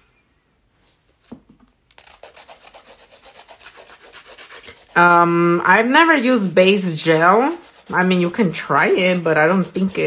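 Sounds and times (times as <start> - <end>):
nail file rasping: 1.9 - 10.0.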